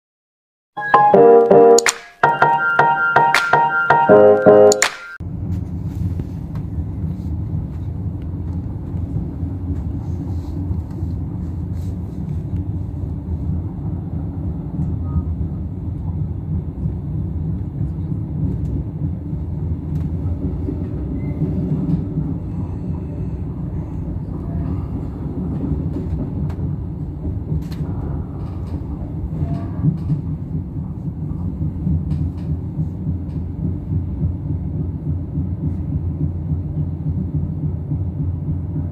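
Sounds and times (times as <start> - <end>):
train rumbling inside carriage: 5.2 - 38.9.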